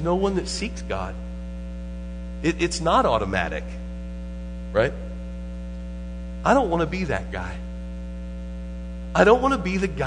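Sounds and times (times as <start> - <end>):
electrical mains hum: 0.0 - 10.0
person speaking: 6.4 - 7.8.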